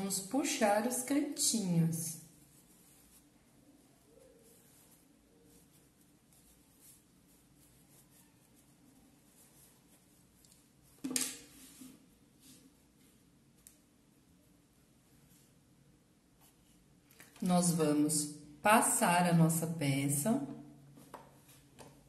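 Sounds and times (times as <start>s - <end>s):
fabric rustling and scratching: 0.0s - 13.5s.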